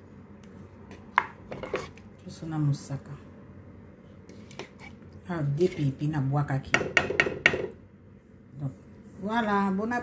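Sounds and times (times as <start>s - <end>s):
spoon knocking on cooking pot: 6.7s - 7.8s.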